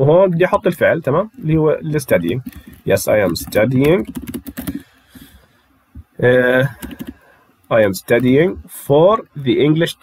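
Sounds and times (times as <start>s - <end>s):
keyboard typing: 2.1s - 5.0s, 6.6s - 7.2s.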